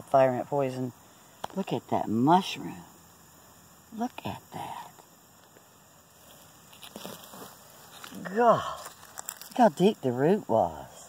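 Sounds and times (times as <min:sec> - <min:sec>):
faint rustling in grass and soil: 0:00.0 - 0:11.0.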